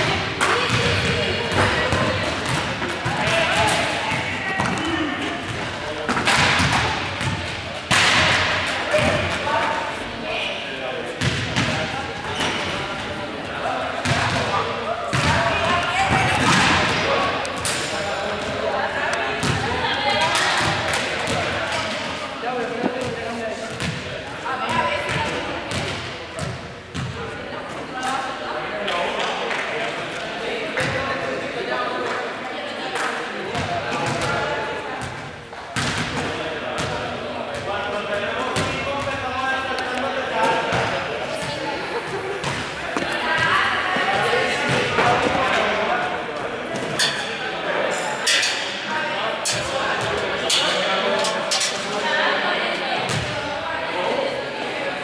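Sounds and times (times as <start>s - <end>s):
balls bouncing on hall floor: 0.0s - 9.7s, 11.2s - 12.8s, 14.0s - 28.2s, 33.5s - 37.8s, 38.4s - 45.7s
group of people chattering: 0.0s - 55.0s.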